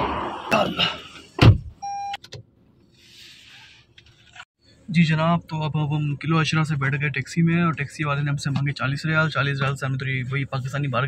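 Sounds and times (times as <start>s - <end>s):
car door slamming: 1.4s - 1.8s
electronic beep: 1.8s - 2.2s.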